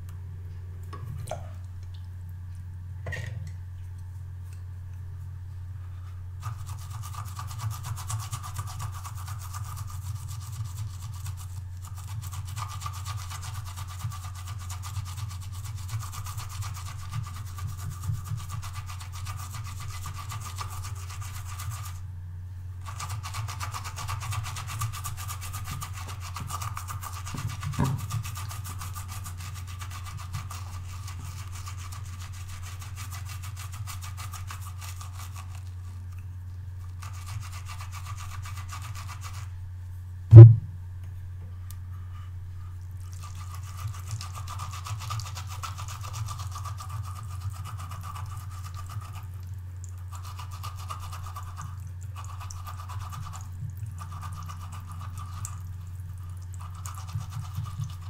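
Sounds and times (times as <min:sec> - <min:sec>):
brush scrubbing on silicone pad: 0:06.4 - 0:22.0, 0:22.8 - 0:39.5, 0:43.0 - 0:58.0.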